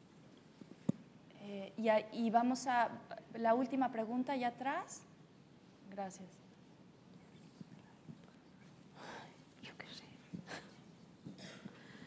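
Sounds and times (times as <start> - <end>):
faint whispering: 7.2 - 10.8.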